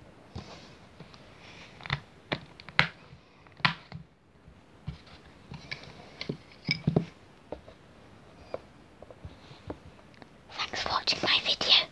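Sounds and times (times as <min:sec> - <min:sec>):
person whispering close-up: 0:10.5 - 0:11.9.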